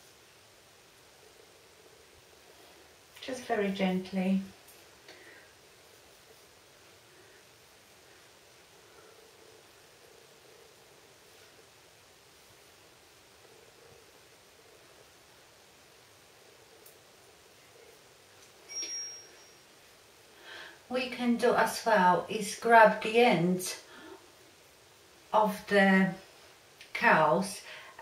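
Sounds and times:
room hiss: 0.0 - 28.0.

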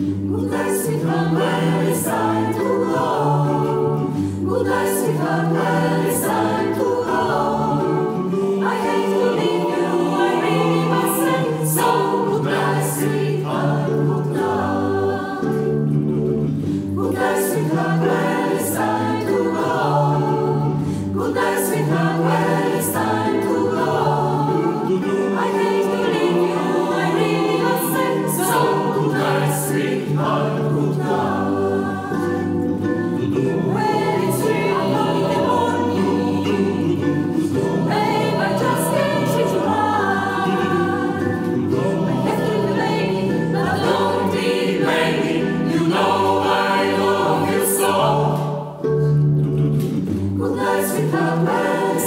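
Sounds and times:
mixed choir singing in harmony: 0.0 - 52.0.

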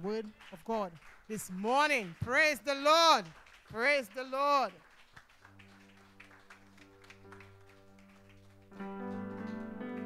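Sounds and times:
soft keyboard chord: 6.8 - 10.0.

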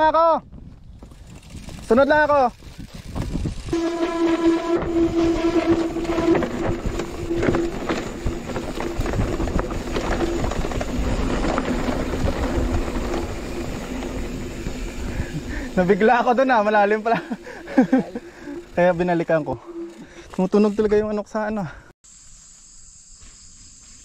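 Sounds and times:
bicycle freehub buzzing: 0.9 - 20.8.

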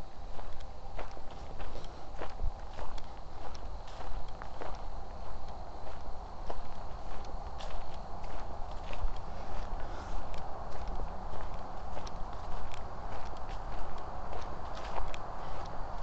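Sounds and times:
low rumble: 0.0 - 16.0
footsteps on dry leaves: 1.2 - 15.8.

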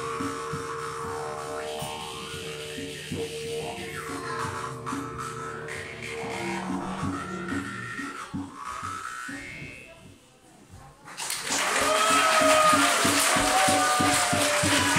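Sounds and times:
jaw harps twanging: 0.0 - 9.9
didgeridoo drone: 0.0 - 10.2.

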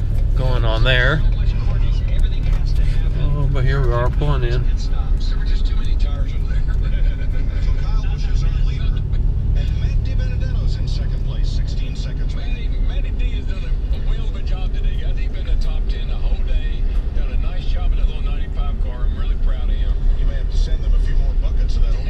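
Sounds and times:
indistinct voices: 0.0 - 22.0
truck engine and road rumble: 0.0 - 22.0.

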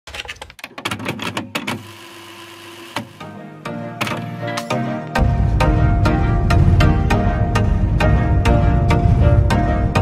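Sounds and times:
background music: 3.2 - 10.0.

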